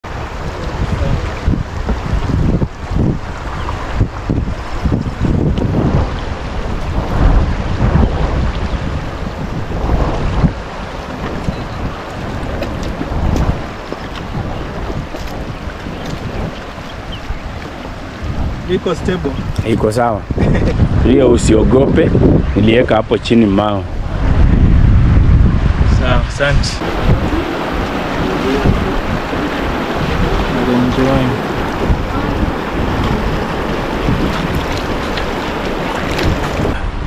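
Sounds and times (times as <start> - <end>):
flowing floodwater: 0.0 - 37.0
wind buffeting microphone: 0.0 - 37.0.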